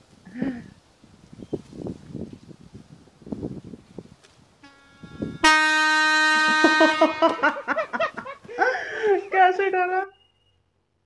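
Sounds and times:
loud horn-like blast: 0:04.6 - 0:07.7.

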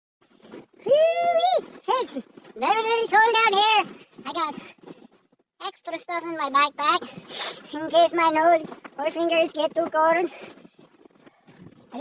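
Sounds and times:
person exclaiming ooh: 0:00.8 - 0:01.6
person speaking: 0:00.8 - 0:04.8, 0:05.6 - 0:10.5.

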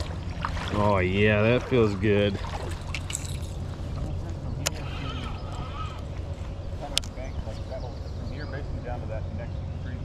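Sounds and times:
river current rumble: 0:00.0 - 0:10.0
wind: 0:00.0 - 0:10.0.

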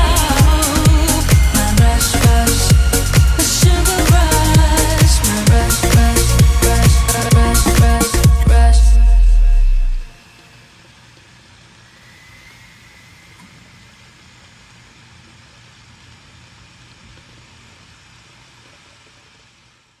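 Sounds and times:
low hum: 0:00.0 - 0:15.8.

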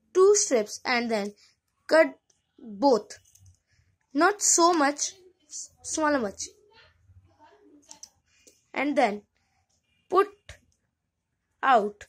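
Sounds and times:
person speaking: 0:00.1 - 0:03.4, 0:04.2 - 0:06.5, 0:08.8 - 0:09.2
scissors snipping yarn: 0:07.9 - 0:08.2.

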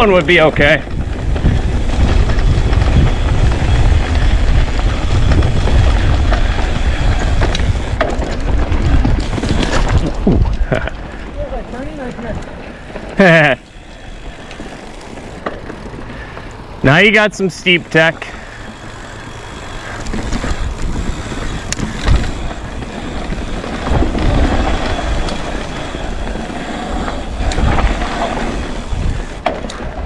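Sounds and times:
wind buffeting microphone: 0:00.0 - 0:16.9, 0:17.7 - 0:30.0
mountain bike rolling on dirt: 0:00.0 - 0:30.0.

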